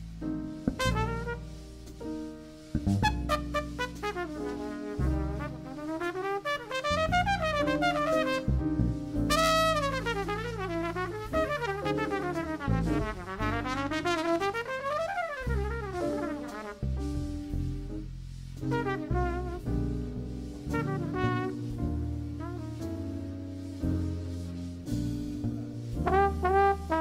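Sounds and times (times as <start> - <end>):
bass and drums: 0.0 - 27.0
jazz trumpet solo: 0.5 - 27.0.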